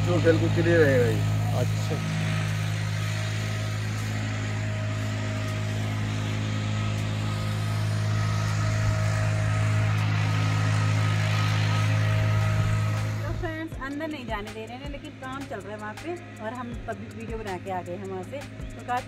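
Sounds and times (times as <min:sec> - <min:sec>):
low engine-like drone: 0:00.0 - 0:19.0.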